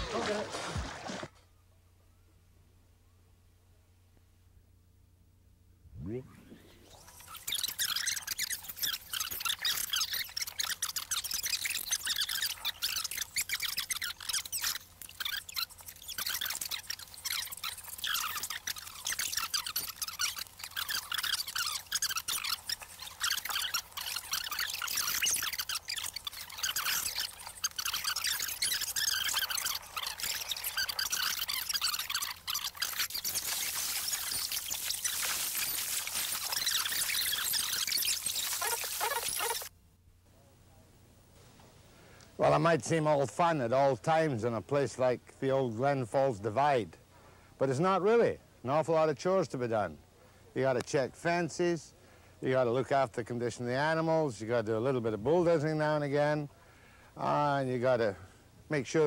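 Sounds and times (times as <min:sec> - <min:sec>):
water splashing and pouring: 0:00.0 - 0:01.3, 0:26.4 - 0:39.7.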